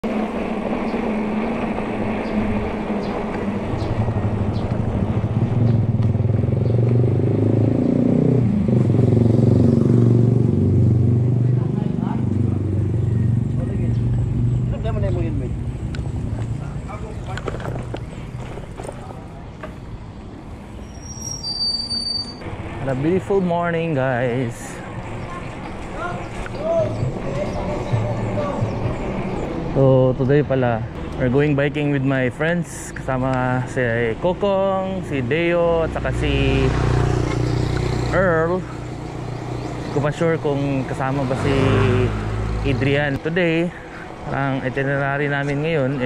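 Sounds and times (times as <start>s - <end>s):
road and wind noise: 0.0s - 46.0s
vehicle engine humming: 0.0s - 46.0s.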